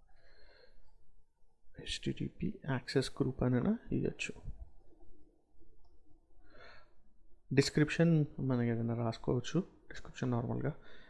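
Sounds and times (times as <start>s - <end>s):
soft breath: 0.0s - 1.0s, 6.3s - 7.2s, 10.8s - 11.0s
low steady hum: 0.0s - 11.0s.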